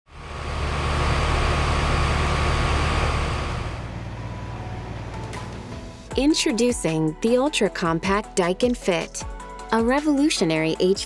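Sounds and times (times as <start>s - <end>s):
air conditioner unit humming: 0.2s - 6.0s.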